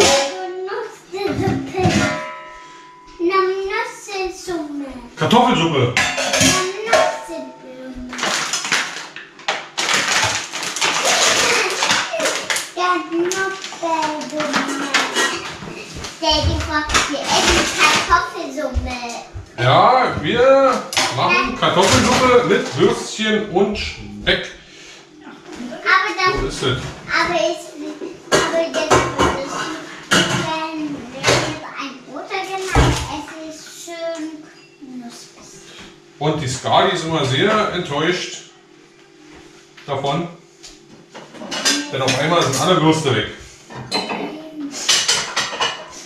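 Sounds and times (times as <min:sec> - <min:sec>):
dishes and cutlery clattering: 0:00.0 - 0:00.4, 0:01.2 - 0:03.1, 0:06.0 - 0:18.2, 0:28.3 - 0:31.6, 0:41.2 - 0:42.8, 0:43.7 - 0:46.0.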